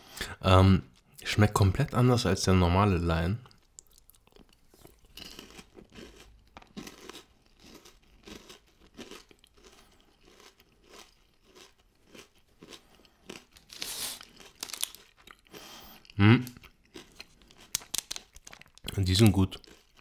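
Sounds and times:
chewing crunchy chocolate bar: 3.4 - 20.0
plastic wrapper crinkling: 13.4 - 15.2, 17.2 - 20.0.

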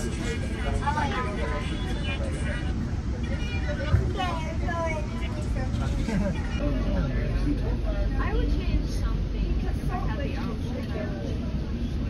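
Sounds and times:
passengers talking: 0.0 - 12.0
rail car rumbling on track: 0.0 - 12.0.

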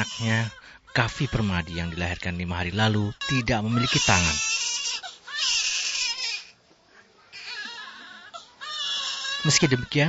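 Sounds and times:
newborn baby crying: 0.0 - 6.6, 7.3 - 10.0.

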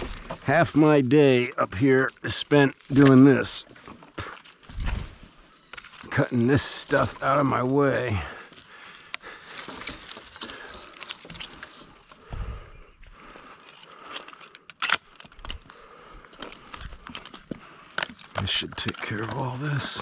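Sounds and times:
climbing gear rustling and clicking: 0.0 - 20.0.

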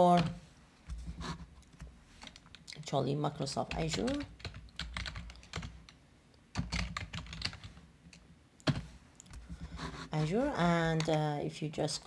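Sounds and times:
typing on computer keyboard: 3.7 - 6.0, 6.6 - 8.8.

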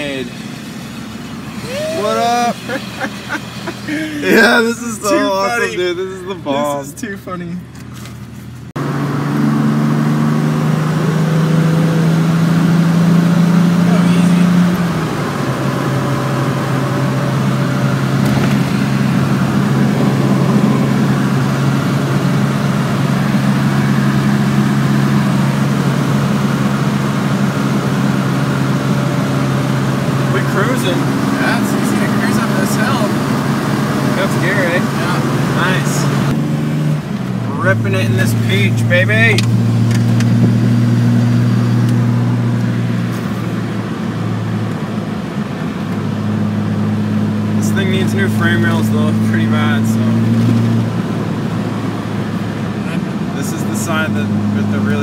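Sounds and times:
car engine droning in cabin: 0.0 - 55.0.

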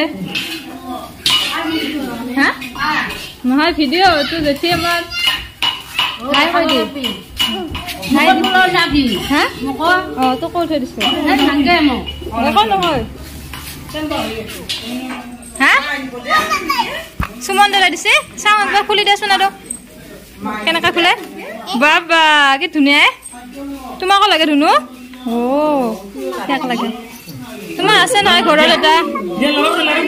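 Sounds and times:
metal kitchenware clinking: 0.0 - 3.4, 4.3 - 16.5, 17.3 - 20.0
young child's high-pitched voice: 4.2 - 5.5.

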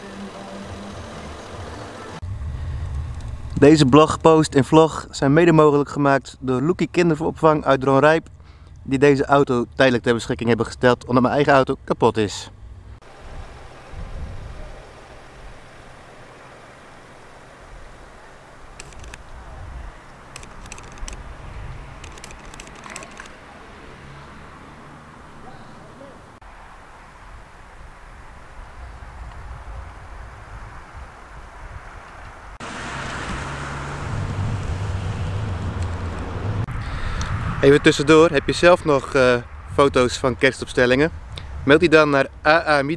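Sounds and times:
vehicle engine running: 0.0 - 3.6, 12.6 - 26.4, 32.6 - 36.7
low rumble with hiss: 0.0 - 21.8
wind noise: 1.3 - 4.3, 13.1 - 15.6, 18.8 - 23.4, 27.1 - 42.0.

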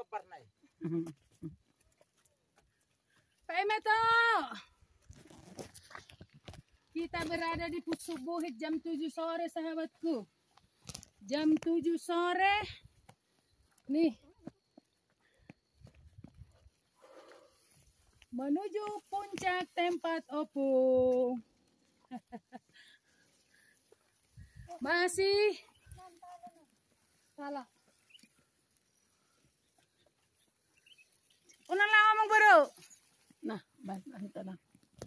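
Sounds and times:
footsteps on loose stones: 4.9 - 8.9, 17.6 - 20.5.

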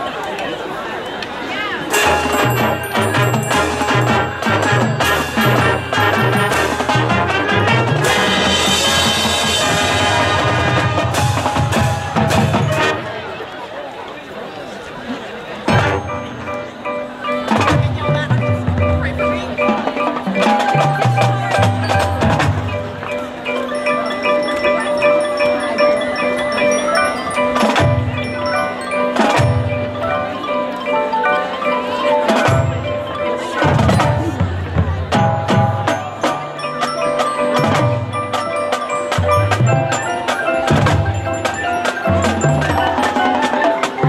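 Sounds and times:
mallet keyboards: 1.5 - 13.7, 15.5 - 44.0
drums: 1.8 - 13.6, 15.5 - 44.0
sharp percussion hits: 1.9 - 13.2
marching band brass: 1.9 - 13.5, 15.6 - 16.7, 17.4 - 23.2, 32.2 - 44.0.

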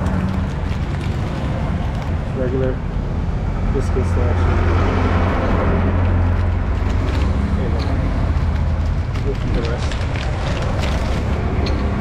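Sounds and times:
vehicle engine humming: 0.0 - 12.0.

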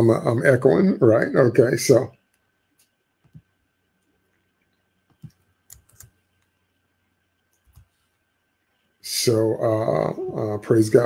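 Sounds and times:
computer keys clicking: 5.1 - 6.5.

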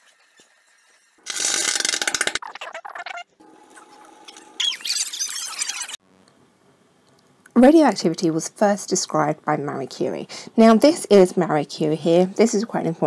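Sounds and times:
loud rattling burst: 1.2 - 2.4
high gliding squeaks and squeals: 2.4 - 6.0.

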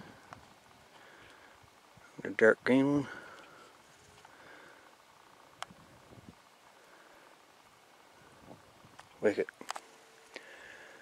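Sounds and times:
soft rustles: 3.2 - 10.9.

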